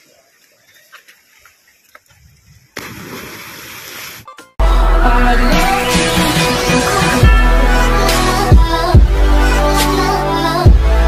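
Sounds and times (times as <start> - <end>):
splash of diving into water: 2.8 - 4.2.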